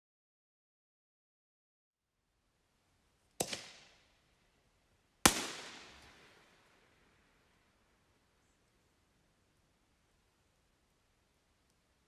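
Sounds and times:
rolling echo: 0:03.4 - 0:04.1, 0:05.3 - 0:08.0
firework bangs: 0:05.3 - 0:06.6.

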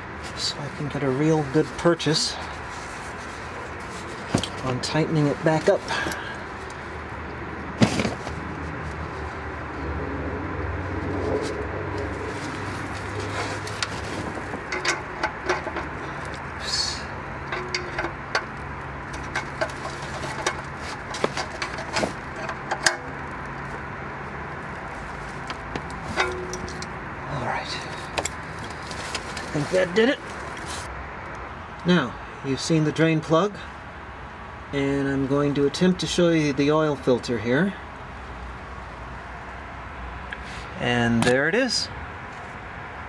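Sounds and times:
steady low hum: 0:00.0 - 0:30.9.

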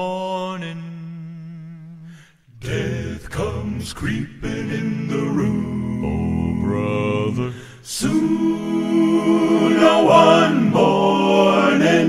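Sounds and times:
male vocal quartet singing harmony: 0:02.5 - 0:12.0.

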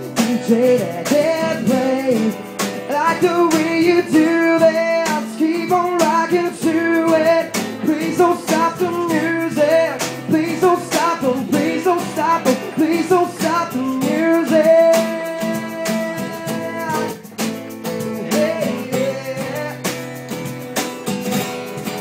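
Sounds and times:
man singing: 0:00.0 - 0:20.3
strummed acoustic guitar: 0:00.0 - 0:22.0.

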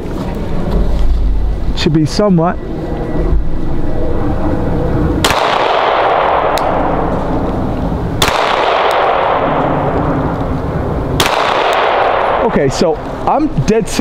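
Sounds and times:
pistol shots with echo: 0:05.2 - 0:07.0, 0:08.2 - 0:10.0, 0:11.2 - 0:12.7.

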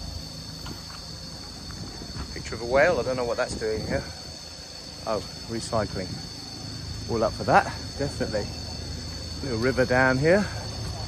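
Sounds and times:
insect chorus drone: 0:00.0 - 0:11.0.

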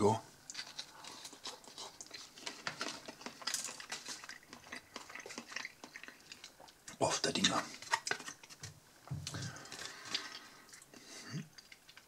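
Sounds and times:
person chewing wetly: 0:00.5 - 0:12.0.

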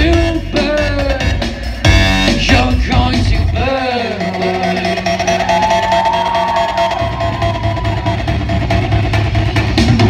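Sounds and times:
steady low bass: 0:00.0 - 0:06.0.

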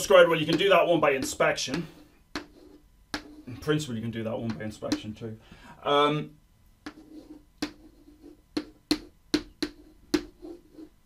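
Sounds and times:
chalk tapping on a blackboard: 0:00.4 - 0:03.6, 0:04.4 - 0:05.1, 0:06.8 - 0:11.0.

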